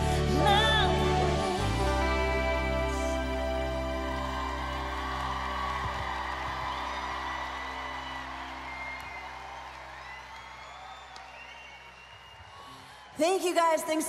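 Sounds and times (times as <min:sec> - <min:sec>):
crowd cheering and whistling: 0:03.5 - 0:14.0.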